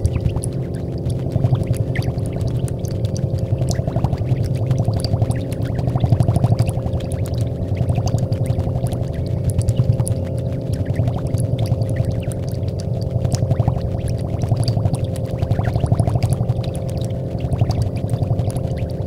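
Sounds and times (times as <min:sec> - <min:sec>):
fine crackle of clicks: 0:00.0 - 0:19.0.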